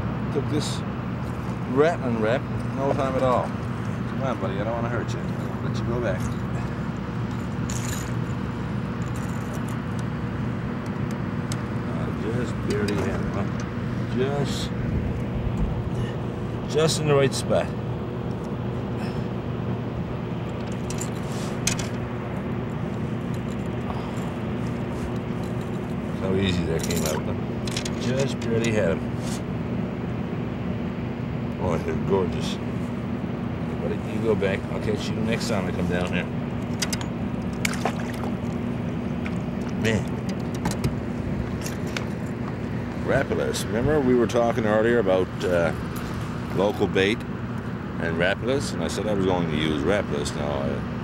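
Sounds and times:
faint steady hum: 0:00.0 - 0:51.0
low rumble and hiss: 0:00.0 - 0:51.0
small splashes in shallow water: 0:37.6 - 0:38.6.

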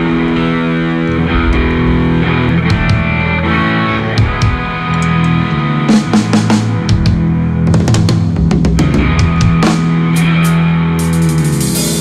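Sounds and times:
bass guitar: 0:00.0 - 0:12.0
distorted electric guitar chords: 0:00.0 - 0:12.0.

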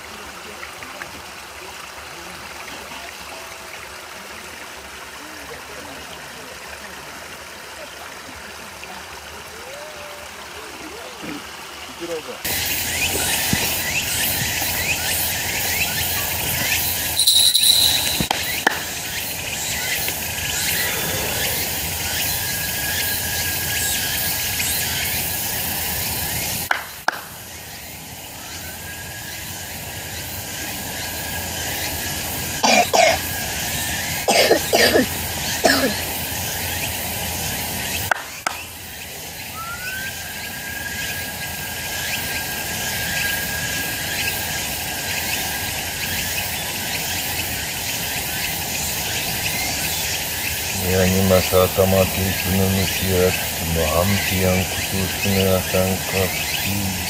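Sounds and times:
insects droning: 0:11.8 - 0:57.0
thin high tone: 0:12.6 - 0:23.0
short sharp sounds: 0:17.2 - 0:19.0.

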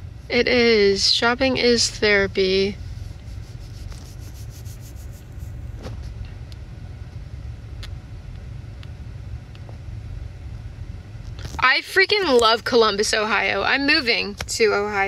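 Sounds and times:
car engine rumble: 0:00.0 - 0:15.0.

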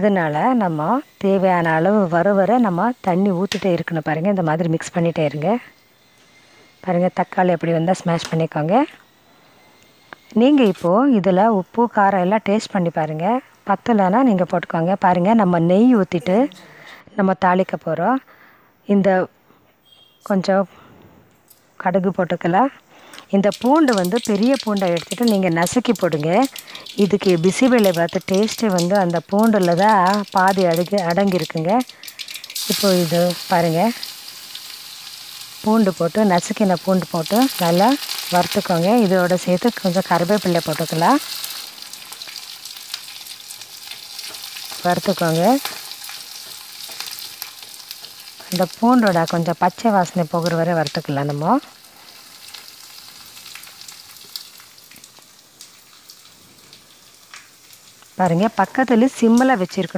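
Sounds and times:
garlic sizzling in hot fat: 0:00.0 - 0:16.9, 0:21.9 - 0:59.9
mustard seeds crackling: 0:23.1 - 0:59.9.

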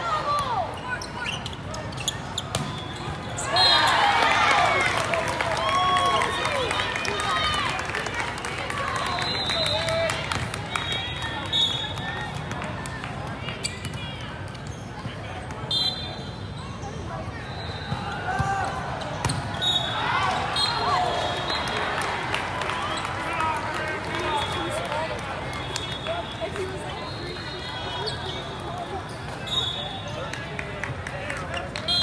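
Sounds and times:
volleyballs being hit and bouncing: 0:02.4 - 0:03.3.

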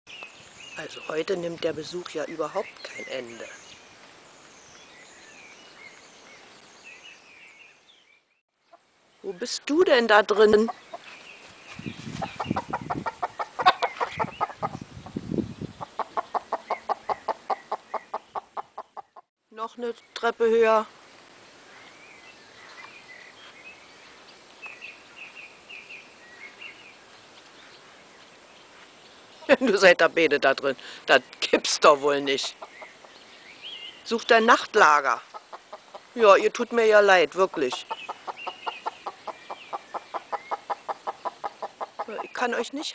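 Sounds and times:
chicken clucking: 0:12.2 - 0:14.8, 0:15.8 - 0:19.2.

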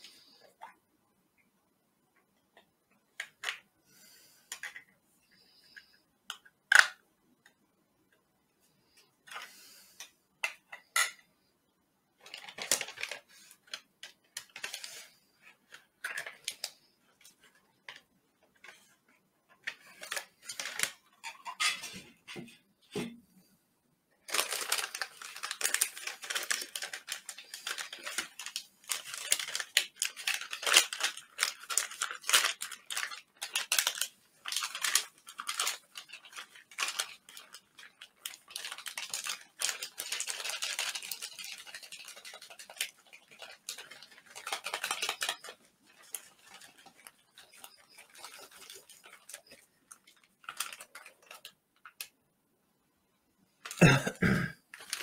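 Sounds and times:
plastic packaging crinkling and tearing: 0:12.2 - 0:18.0, 0:19.6 - 0:21.9, 0:24.2 - 0:52.1, 0:53.6 - 0:54.0, 0:54.7 - 0:55.0.

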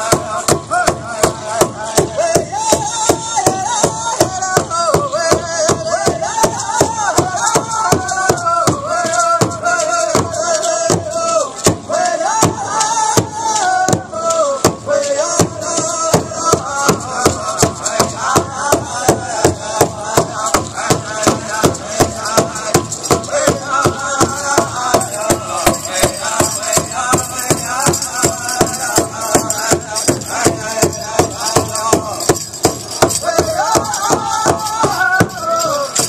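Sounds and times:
high-pitched group singing: 0:00.0 - 0:36.0
large drum beating: 0:00.0 - 0:36.0.

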